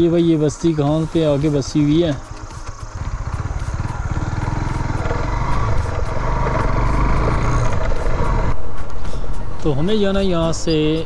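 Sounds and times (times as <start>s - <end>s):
motorcycle engine accelerating: 1.7s - 8.7s.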